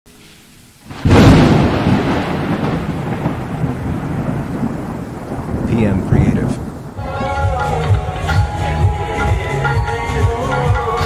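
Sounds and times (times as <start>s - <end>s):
thunder-like boom and rumble: 0.9s - 7.0s.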